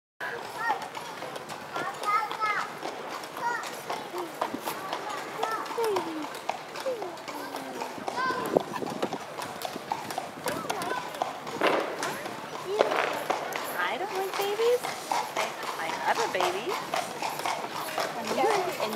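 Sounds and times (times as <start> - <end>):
horse hooves clopping on pavement: 0.2 - 18.9
people talking: 10.4 - 14.9, 15.8 - 16.8, 18.0 - 18.9.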